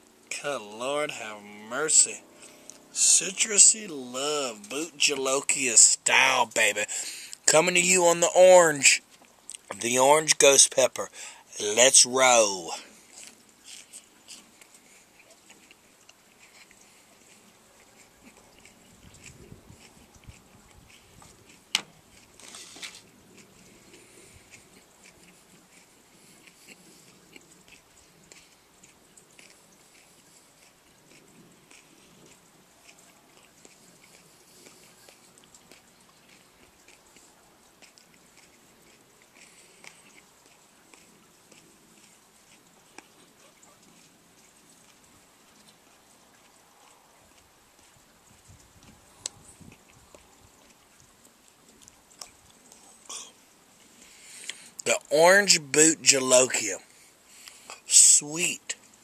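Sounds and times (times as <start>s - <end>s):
chewing with wet mouth clicks: 8.9s - 9.8s, 12.8s - 59.0s.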